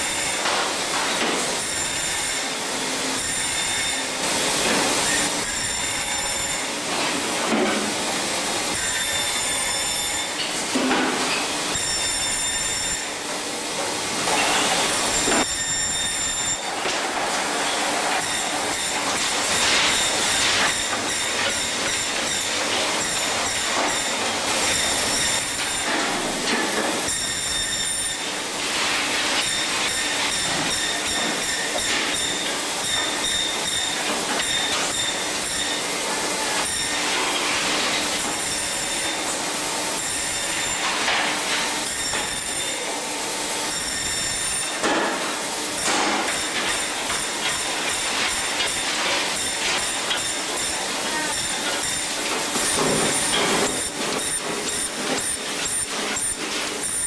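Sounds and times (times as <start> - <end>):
band saw running: 0.0 - 57.0
high-pitched blade squealing: 15.0 - 16.7.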